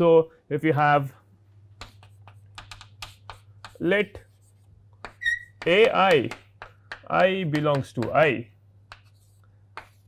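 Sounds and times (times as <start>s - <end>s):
chalk tapping and scratching on board: 1.8s - 10.0s.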